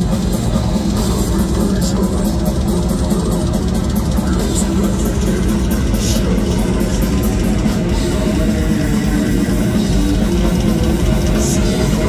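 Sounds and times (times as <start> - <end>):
distorted electric guitars: 0.0 - 12.0
drums: 0.0 - 12.0
rapid cymbal strokes: 0.0 - 12.0.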